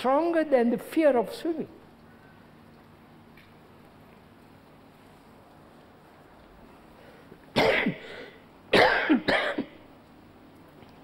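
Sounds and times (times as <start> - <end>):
elderly man coughing: 7.6 - 9.8.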